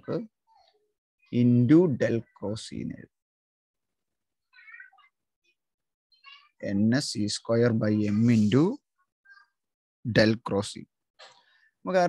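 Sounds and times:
faint high-pitched cry: 4.5s - 5.2s.

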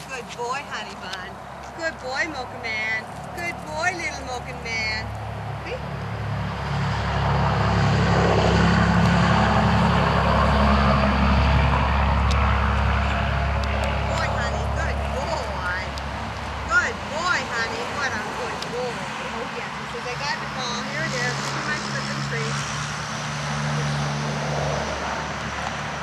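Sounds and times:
vehicle engine running: 0.0s - 26.0s.

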